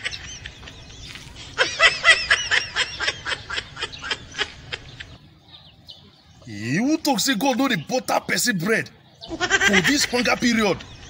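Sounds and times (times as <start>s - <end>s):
man laughing: 9.3s - 10.8s.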